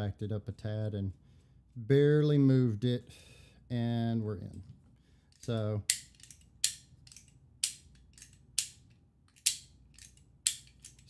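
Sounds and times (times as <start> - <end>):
sharp plastic snaps: 5.4 - 11.0.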